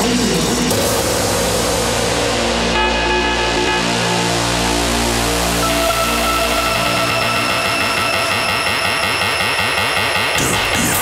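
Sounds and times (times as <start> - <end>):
electronic synthesizer music: 0.7 - 11.0.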